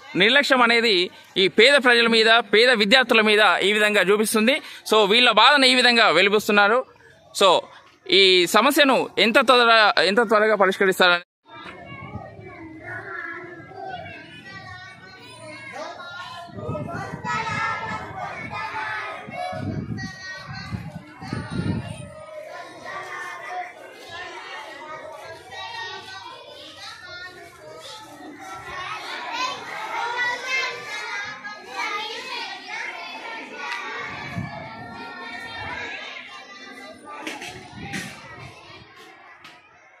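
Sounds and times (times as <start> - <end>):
children chattering: 0.0 - 40.0.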